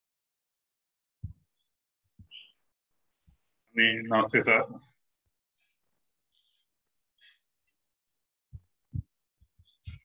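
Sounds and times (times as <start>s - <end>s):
soft low thumps: 8.5s - 10.0s.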